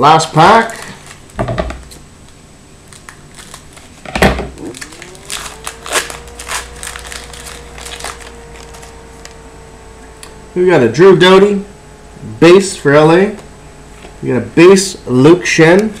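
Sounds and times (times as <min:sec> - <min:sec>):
foil wrapper crinkling: 0:00.5 - 0:01.4, 0:02.8 - 0:09.0
scissors cutting foil pack: 0:02.9 - 0:03.9, 0:04.6 - 0:08.9.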